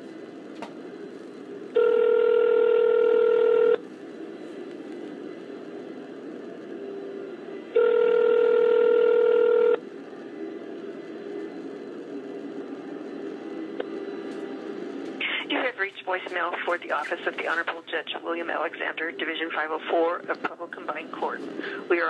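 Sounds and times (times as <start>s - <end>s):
phone line hiss: 0.9s - 5.7s, 6.6s - 17.9s
telephone ringback tone: 1.7s - 3.8s, 7.7s - 9.8s.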